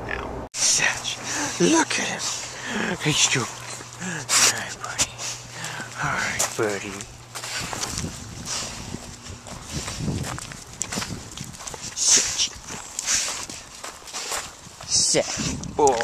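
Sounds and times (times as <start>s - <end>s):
scuffing and rustling on gravel: 3.3s - 16.0s
short hissy puffs: 3.6s - 6.0s.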